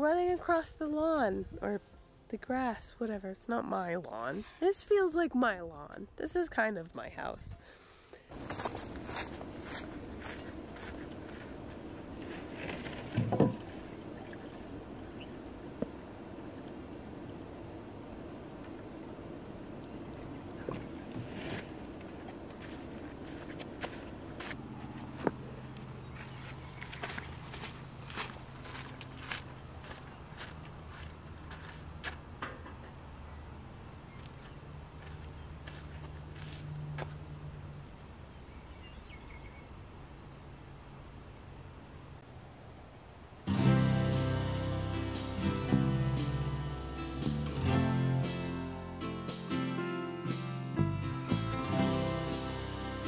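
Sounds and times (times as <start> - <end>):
footsteps: 8.3 - 13.8, 20.6 - 32.9
plastic water jug handled: 12.6 - 14.4
background hiss: 42.9 - 53.0.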